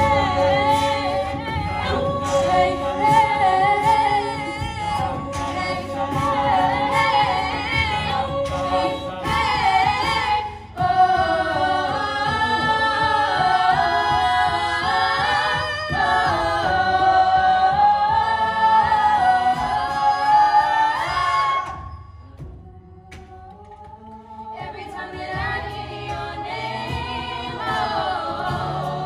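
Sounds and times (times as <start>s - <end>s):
a cappella group singing: 0.0s - 29.0s.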